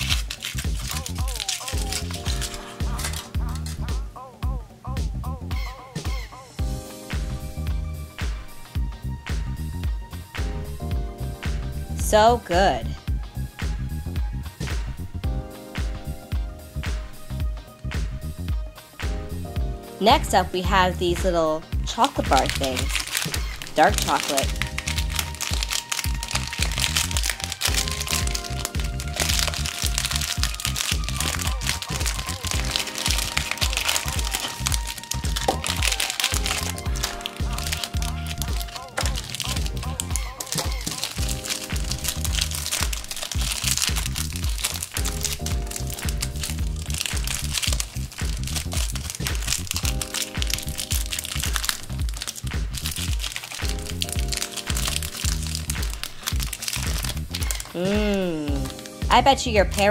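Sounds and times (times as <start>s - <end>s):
candy wrappers crinkling: 0.0s - 3.9s, 21.9s - 59.9s
background music: 0.0s - 59.9s.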